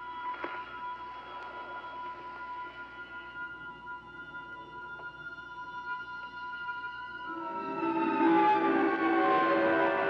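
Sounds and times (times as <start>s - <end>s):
eerie sustained high tones: 0.9s - 10.0s.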